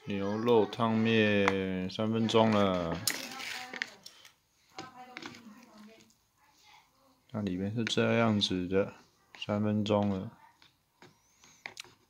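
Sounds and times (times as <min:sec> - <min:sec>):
man's voice: 0:00.0 - 0:03.1.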